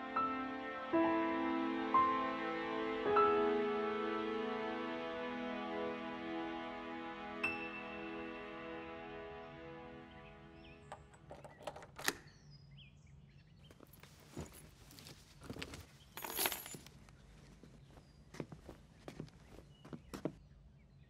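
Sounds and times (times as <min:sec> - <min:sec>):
music: 0:00.0 - 0:11.3
objects handled on a tabletop: 0:13.7 - 0:17.7.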